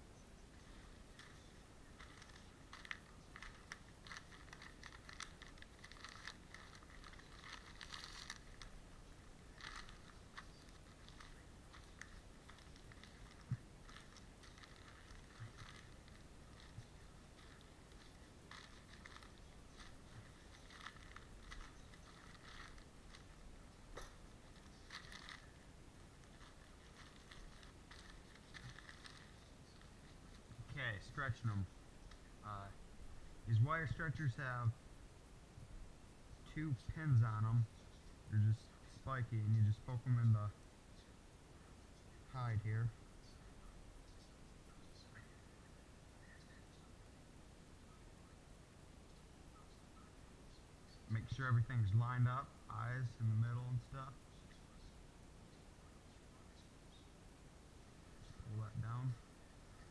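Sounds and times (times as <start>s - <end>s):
newspaper crinkling and rustling: 0.6s - 30.6s.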